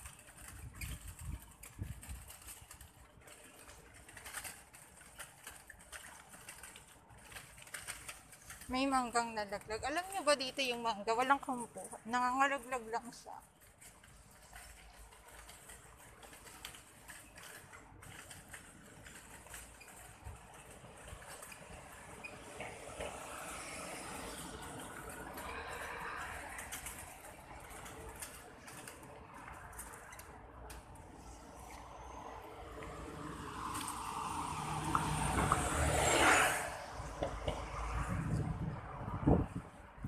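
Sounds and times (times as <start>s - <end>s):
car passing: 22.5s - 29.9s, 31.2s - 40.0s.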